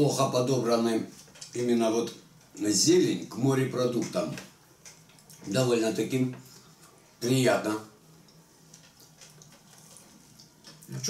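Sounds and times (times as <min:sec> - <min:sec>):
low steady hum: 0:00.0 - 0:11.0
people chewing food: 0:04.6 - 0:05.5, 0:06.4 - 0:07.2, 0:08.0 - 0:11.0.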